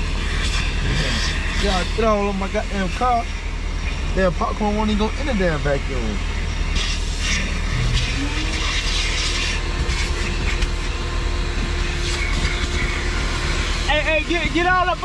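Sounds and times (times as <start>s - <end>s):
vacuum humming: 0.0s - 15.0s
hissing suction: 0.2s - 2.2s, 6.1s - 11.0s.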